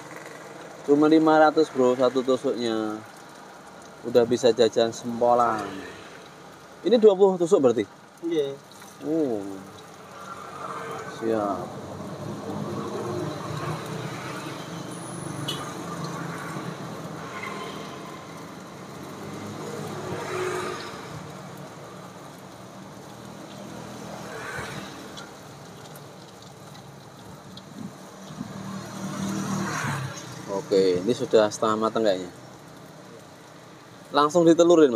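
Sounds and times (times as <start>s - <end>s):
motor traffic passing: 0.0s - 6.8s, 7.9s - 34.3s
dough sizzling in hot oil: 0.0s - 34.9s.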